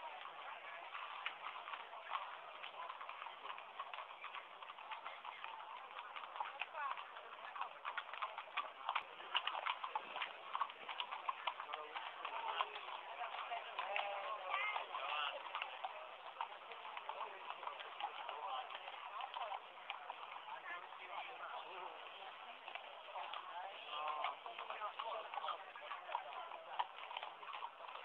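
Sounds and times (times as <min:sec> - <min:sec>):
horse hooves clip-clopping on pavement: 0:00.0 - 0:28.0
murmur of crowd: 0:00.0 - 0:28.0.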